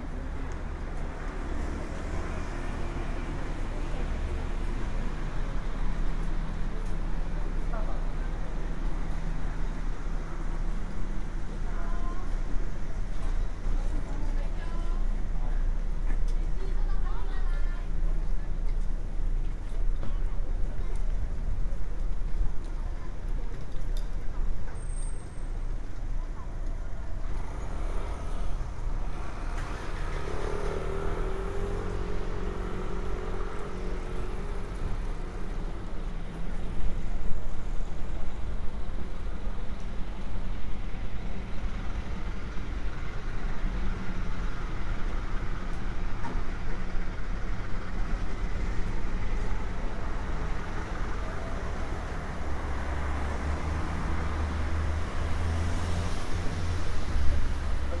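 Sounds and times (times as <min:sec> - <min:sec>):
heavy vehicle rumble: 0:00.0 - 0:58.0
road traffic passing: 0:00.0 - 0:58.0.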